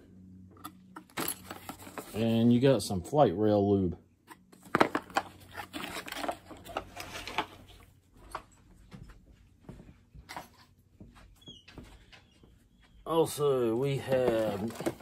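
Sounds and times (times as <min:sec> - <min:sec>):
cardboard and paper rustling: 0:01.1 - 0:02.4, 0:04.5 - 0:08.0, 0:13.8 - 0:15.0.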